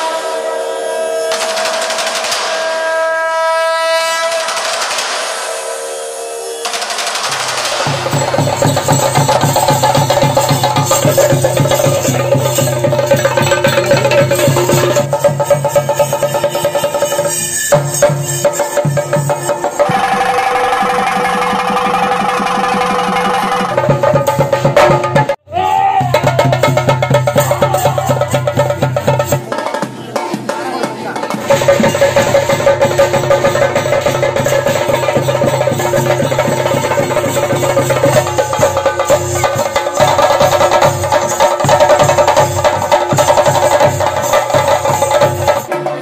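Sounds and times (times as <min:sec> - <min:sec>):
held wind instrument note: 0:00.0 - 0:13.8
rapid rolling drum strokes: 0:01.2 - 0:03.0, 0:04.0 - 0:05.9, 0:06.6 - 0:46.0.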